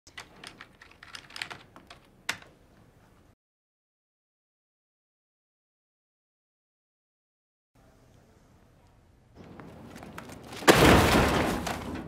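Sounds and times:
typing on computer keyboard: 0:00.1 - 0:02.5.

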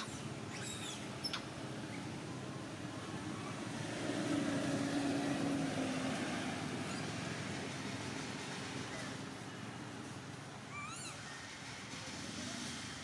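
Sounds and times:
distant engine hum: 0:00.0 - 0:13.0
outdoor background noise: 0:00.0 - 0:13.0.

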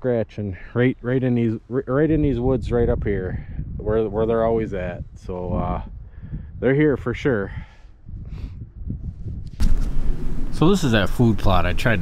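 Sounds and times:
wind rumble on microphone: 0:01.9 - 0:12.0
microphone handling noise: 0:08.1 - 0:10.8.

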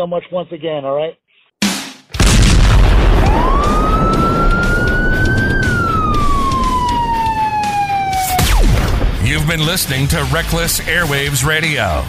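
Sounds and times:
loud rumbling noise: 0:02.2 - 0:08.0
siren wailing: 0:03.0 - 0:09.0.

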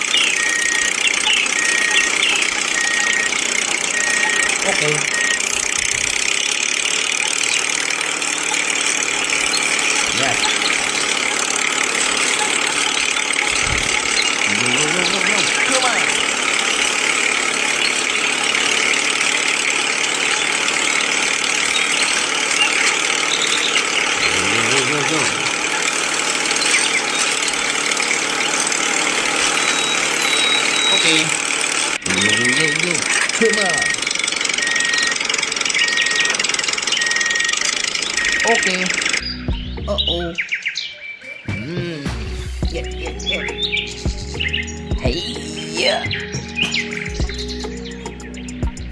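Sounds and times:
small motor whining: 0:00.0 - 0:39.7.

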